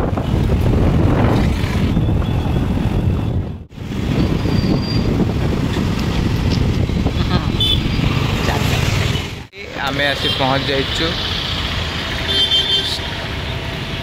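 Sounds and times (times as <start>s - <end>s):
wind buffeting microphone: 0.0s - 9.4s
road and traffic noise: 0.0s - 14.0s.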